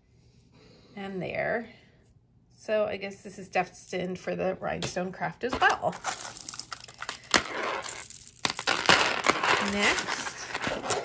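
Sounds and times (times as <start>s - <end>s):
beads rattling: 5.5s - 11.0s
jewelry clacking in a tray: 5.5s - 11.0s.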